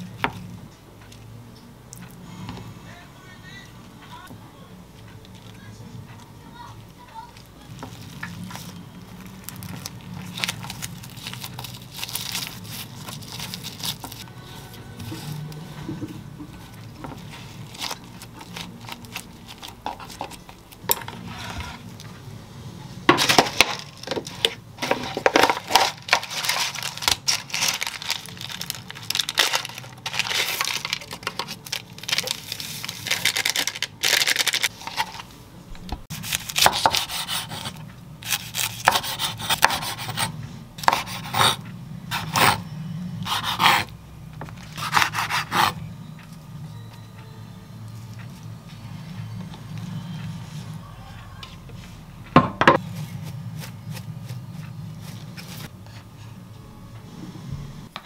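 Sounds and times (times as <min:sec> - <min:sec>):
sachet emptied into paper cup: 0:25.4 - 0:34.7.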